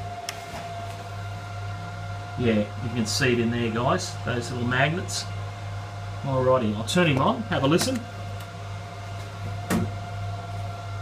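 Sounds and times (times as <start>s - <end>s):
milling machine humming: 0.0s - 11.0s.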